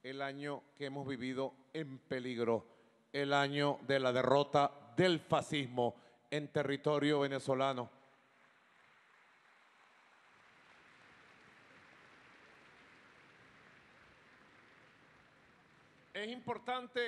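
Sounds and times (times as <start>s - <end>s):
faint audience applause: 8.1s - 17.0s.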